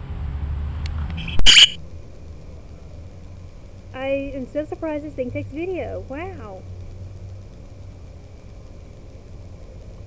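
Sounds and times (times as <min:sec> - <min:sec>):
short high electronic chirp: 0:01.2 - 0:01.8.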